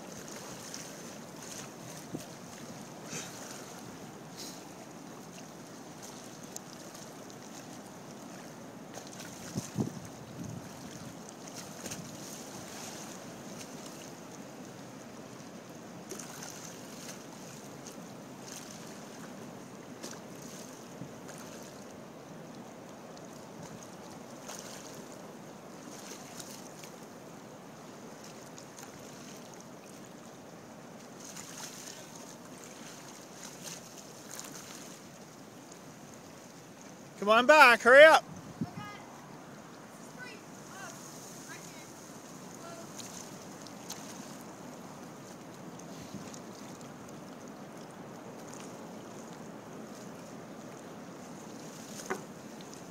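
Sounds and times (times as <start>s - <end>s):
waves lapping against wooden dock: 0.0s - 52.9s
wind gusts on microphone: 9.3s - 11.2s, 38.2s - 39.3s.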